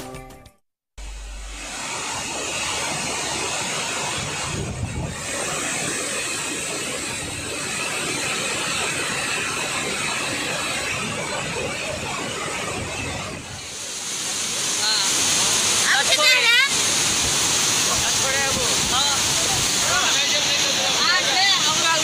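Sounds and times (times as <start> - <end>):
water rushing through spillway: 1.2 - 22.0.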